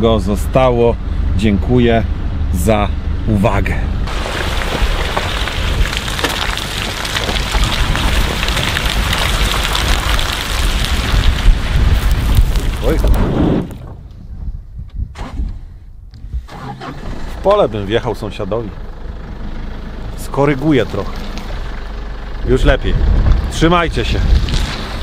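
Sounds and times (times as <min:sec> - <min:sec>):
truck engine and tyres: 0:00.0 - 0:25.0
wind rushing over microphone: 0:03.9 - 0:16.5, 0:22.6 - 0:25.0.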